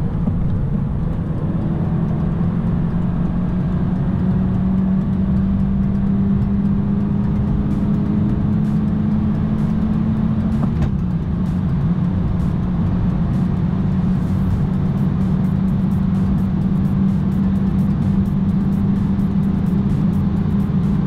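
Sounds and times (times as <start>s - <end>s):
car engine at full throttle: 0.0s - 21.0s
wind and road noise: 0.0s - 21.0s.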